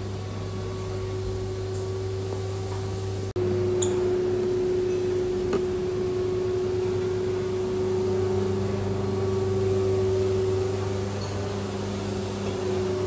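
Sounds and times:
air conditioning hum: 0.0 - 13.0.

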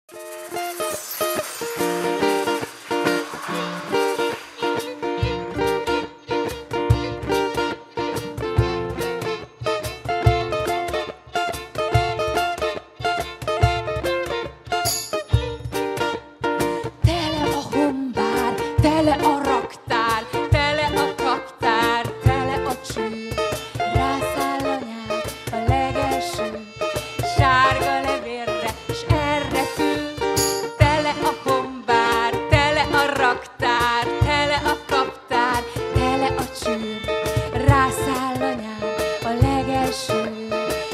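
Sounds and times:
percussion beats: 0.1 - 40.9
violin melody: 0.1 - 40.9
strummed acoustic guitar: 0.2 - 40.9.

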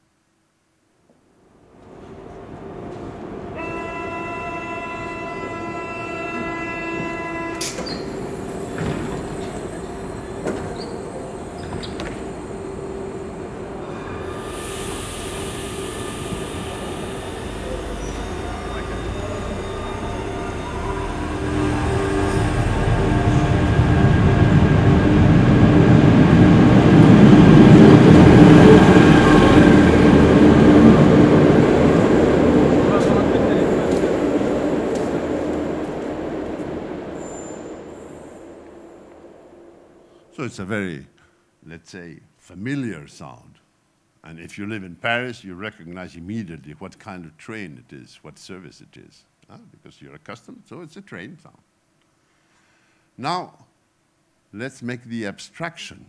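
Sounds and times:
recorded train over loudspeakers: 1.8 - 41.1
chord-like tones: 15.0 - 40.0.

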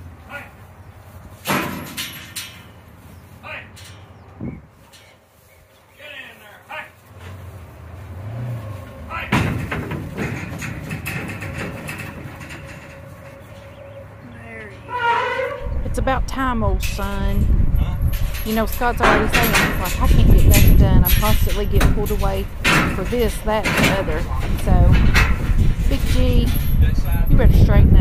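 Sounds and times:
hooves clattering on trailer floor: 0.0 - 28.0
trailer rattling: 0.0 - 28.0
knocks: 9.2 - 13.7.

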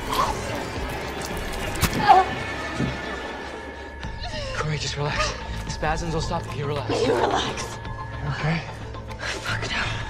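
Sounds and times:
dark music with held tone: 0.0 - 10.0.

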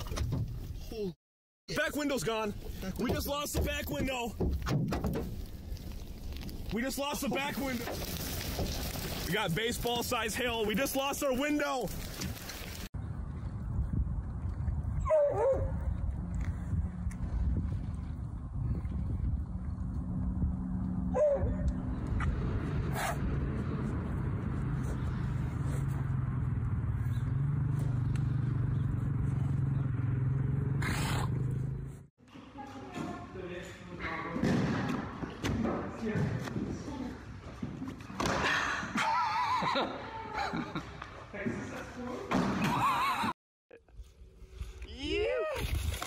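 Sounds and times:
low rumble: 15.7 - 32.1.

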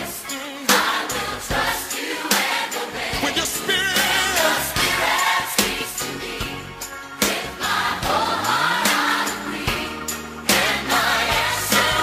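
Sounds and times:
gospel song with choir and beat: 0.0 - 12.0.

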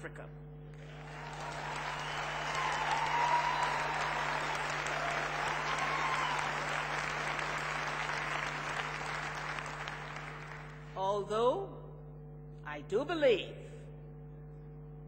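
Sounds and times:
large audience applauding: 0.8 - 11.0.

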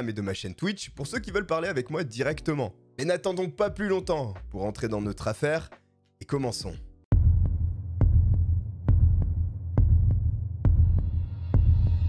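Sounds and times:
heartbeat-like double thump: 7.1 - 11.9.

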